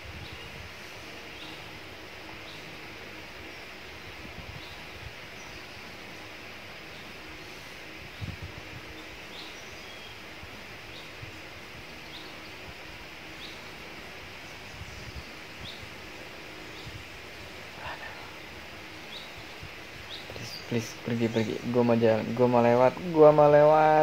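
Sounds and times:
forest ambience hiss: 0:00.0 - 0:24.0
small bird calling: 0:00.0 - 0:24.0.

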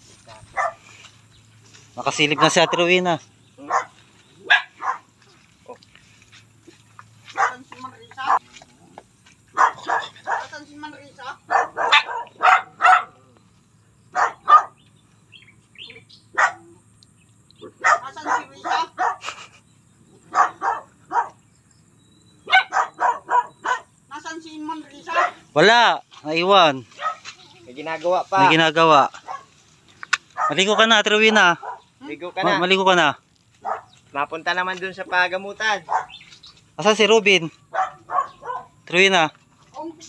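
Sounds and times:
dogs barking: 0:00.3 - 0:00.9, 0:02.0 - 0:05.5, 0:07.3 - 0:08.6, 0:09.4 - 0:10.7, 0:11.3 - 0:13.4, 0:14.1 - 0:14.9, 0:16.2 - 0:16.9, 0:17.6 - 0:21.5, 0:22.4 - 0:24.0, 0:25.0 - 0:25.8, 0:26.9 - 0:27.4, 0:28.4 - 0:29.6, 0:30.2 - 0:32.7, 0:33.6 - 0:34.0, 0:35.6 - 0:39.0.

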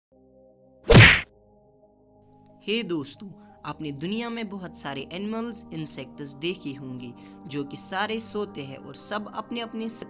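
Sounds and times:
faint background music: 0:00.2 - 0:10.0
loud whack sound effect: 0:00.9 - 0:01.3.

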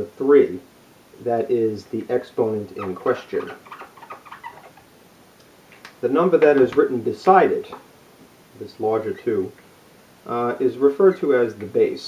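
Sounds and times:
marker squeaking on board: 0:02.7 - 0:04.9.

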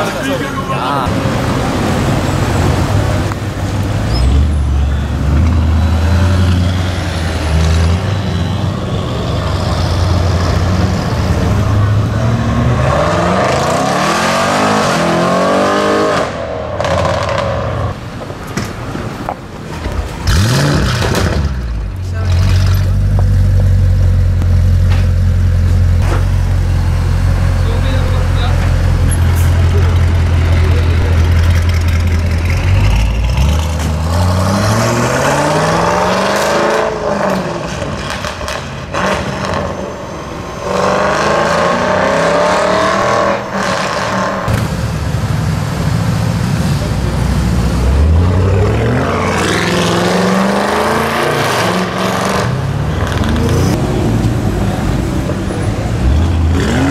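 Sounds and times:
car engine revving: 0:00.0 - 0:18.0, 0:20.2 - 0:39.8, 0:40.6 - 0:56.9
car engine idling loudly: 0:25.2 - 0:33.2.

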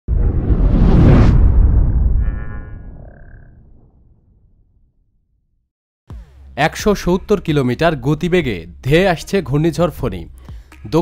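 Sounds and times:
deep rumble: 0:00.1 - 0:05.3.

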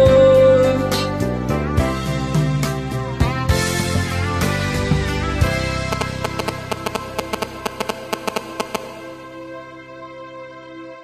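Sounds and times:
instrumental backing music: 0:00.0 - 0:09.8.

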